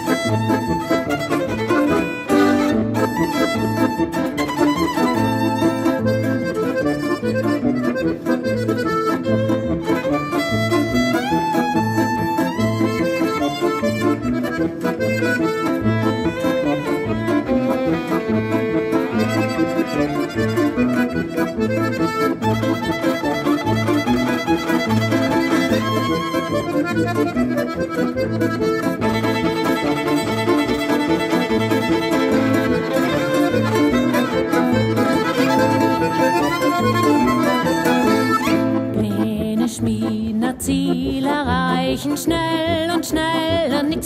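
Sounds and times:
button accordion: 0:00.0 - 0:44.0
violin melody: 0:00.0 - 0:44.0.

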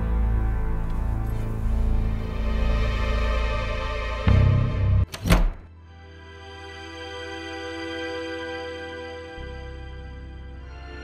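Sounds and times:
soft music with long held notes: 0:00.0 - 0:05.1, 0:05.7 - 0:11.0
tense drama music: 0:00.0 - 0:11.0.

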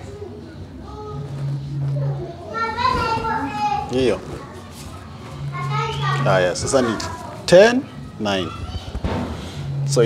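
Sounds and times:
child talking in high voice: 0:02.0 - 0:03.9.

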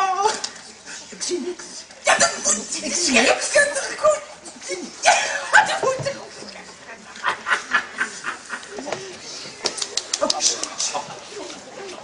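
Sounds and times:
people talking: 0:01.1 - 0:12.0
people laughing: 0:04.4 - 0:12.0.

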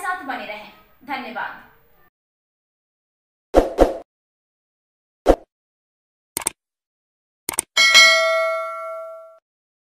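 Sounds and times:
notification bell ding: 0:07.8 - 0:09.4.

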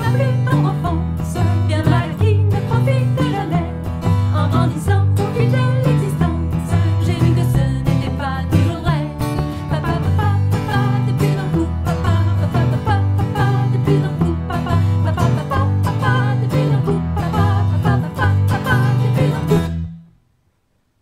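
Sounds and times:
electric bass guitar: 0:00.0 - 0:20.1
acoustic guitar: 0:00.0 - 0:20.3.

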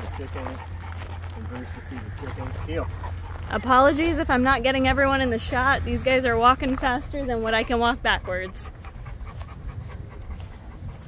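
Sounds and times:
dogs panting quickly: 0:00.0 - 0:11.0.

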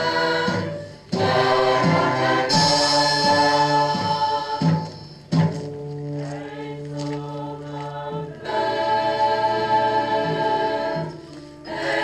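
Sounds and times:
choir singing held chords: 0:00.0 - 0:05.4, 0:06.1 - 0:12.0.

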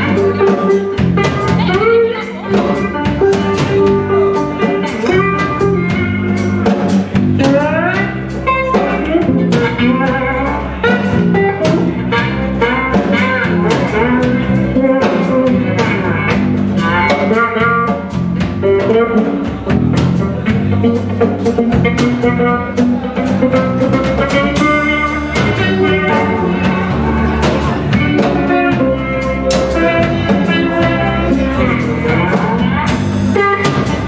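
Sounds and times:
drum kit steady beat: 0:00.0 - 0:34.0
electric bass: 0:00.0 - 0:34.0
electric guitar bending notes: 0:00.0 - 0:34.0.

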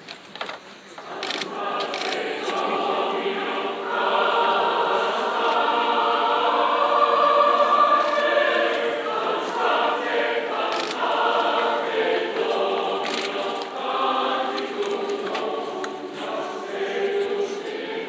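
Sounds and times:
choir singing a hymn: 0:00.9 - 0:18.0.

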